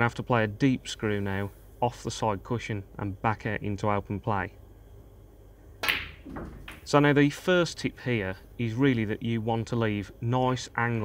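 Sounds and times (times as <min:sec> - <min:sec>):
snooker ball sharp click: 0:05.8 - 0:06.9.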